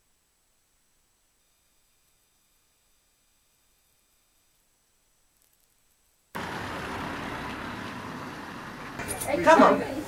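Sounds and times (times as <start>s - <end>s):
road traffic noise: 6.4s - 10.0s.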